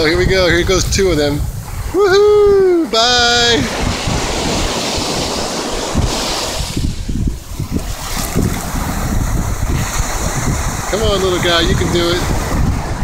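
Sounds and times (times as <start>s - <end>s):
surf washing over sand: 0.0s - 13.0s
wind buffeting microphone: 0.0s - 13.0s.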